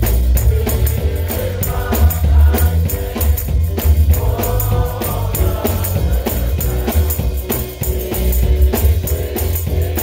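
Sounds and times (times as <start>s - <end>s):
gospel choir singing with band: 0.0s - 10.0s
percussion beat: 0.0s - 10.0s.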